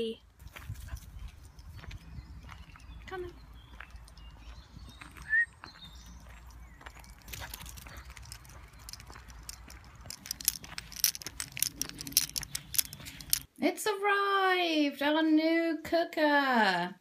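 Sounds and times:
footsteps crunching on gravel: 0.4s - 11.4s.

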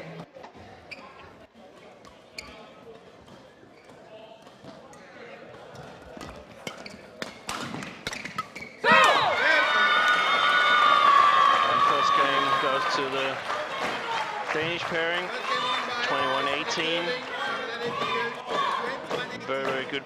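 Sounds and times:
crowd cheering: 8.8s - 19.9s.

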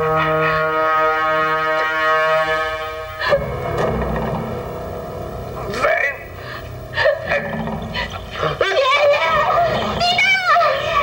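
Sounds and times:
sustained brass chord: 0.0s - 6.9s.

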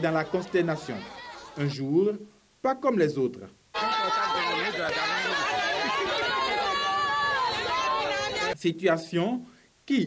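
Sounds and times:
crowd crying out and shouting: 0.0s - 1.8s, 3.8s - 8.6s.

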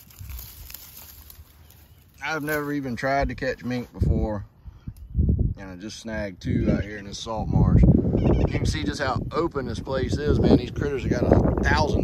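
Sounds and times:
dry grass rustling: 0.0s - 4.3s.

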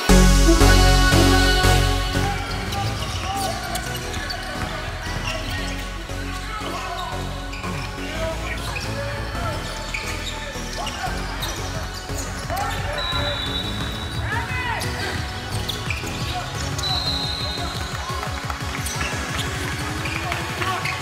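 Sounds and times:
background music: 0.0s - 21.0s
voices in gym: 2.2s - 21.0s
sneakers squeaking: 2.5s - 21.0s.

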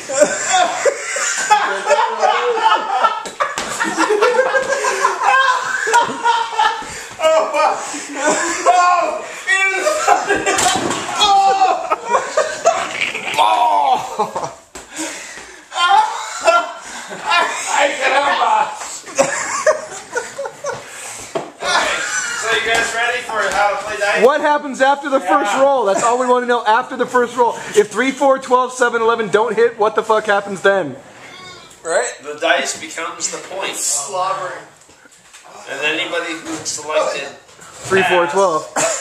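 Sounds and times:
men laughing: 0.0s - 27.8s, 37.9s - 39.0s.

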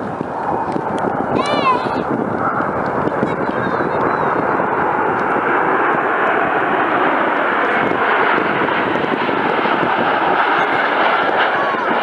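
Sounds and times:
jet engines flying past: 0.0s - 12.0s.

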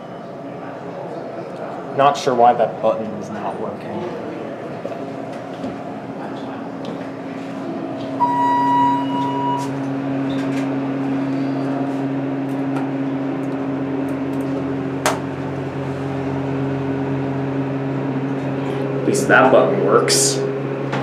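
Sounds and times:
elevator hum: 0.0s - 21.0s
electronic beep: 8.2s - 9.8s.

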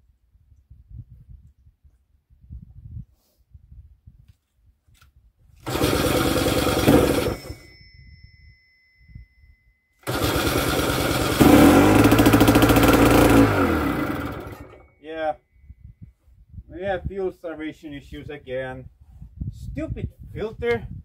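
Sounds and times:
two-stroke engine running: 5.6s - 7.6s, 10.0s - 14.9s
engine cranking: 5.6s - 7.7s, 10.0s - 14.9s.

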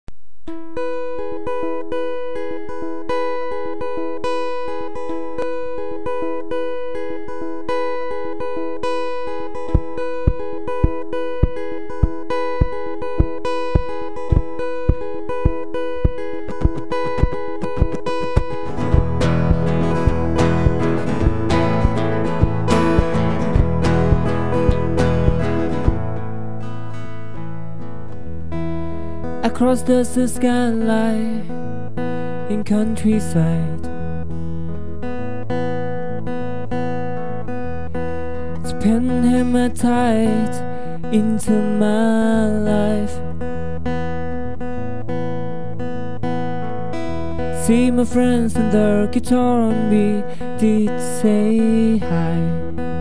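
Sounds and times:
acoustic guitar picking: 0.4s - 53.0s
steady low thump: 9.7s - 26.1s
deep bass notes: 9.7s - 26.5s.

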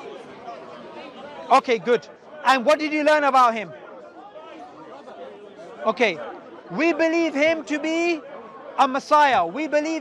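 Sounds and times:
background chatter: 0.0s - 10.0s
man speaking close: 8.8s - 10.0s.

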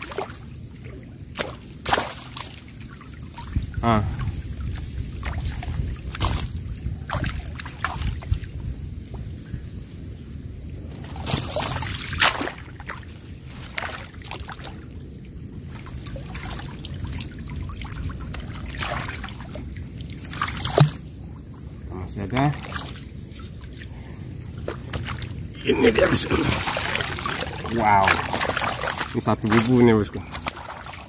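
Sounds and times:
water splashing and sloshing: 0.0s - 31.0s.

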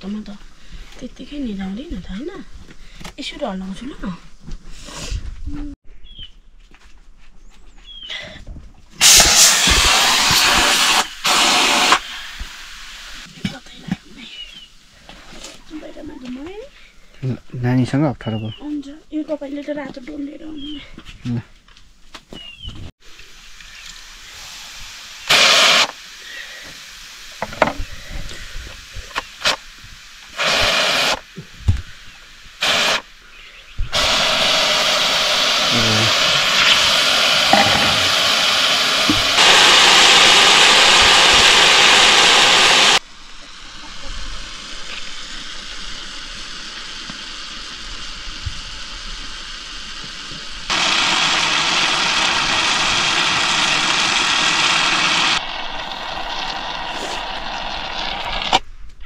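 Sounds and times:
pressure cooker steam hissing: 9.0s - 16.6s, 23.0s - 58.6s.

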